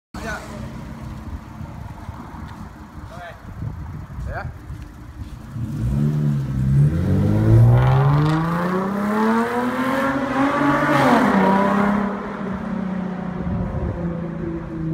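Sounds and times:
car engine idling and revving: 0.2s - 14.9s.

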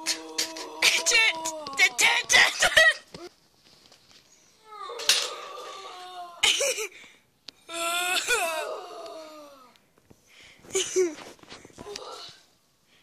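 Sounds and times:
boy's wordless vocal cries: 0.0s - 3.0s, 4.6s - 6.9s, 7.7s - 9.7s.

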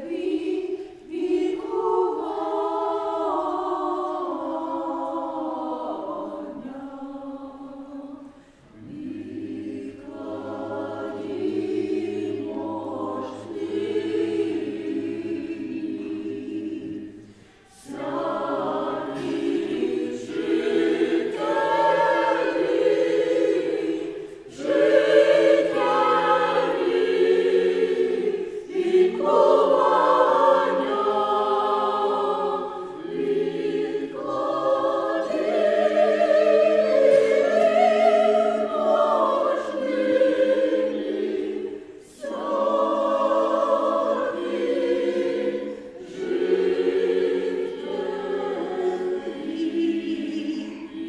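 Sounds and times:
mixed choir singing unaccompanied: 0.0s - 51.0s.

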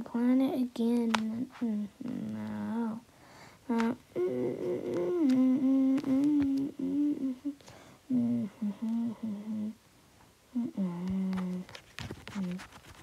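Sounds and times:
child humming: 0.0s - 9.8s, 10.5s - 12.6s.

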